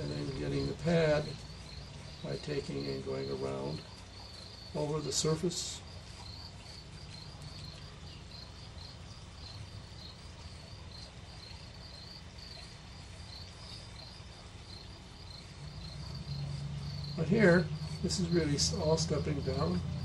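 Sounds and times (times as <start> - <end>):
faint high cricket-like chirps: 0.0 - 20.0.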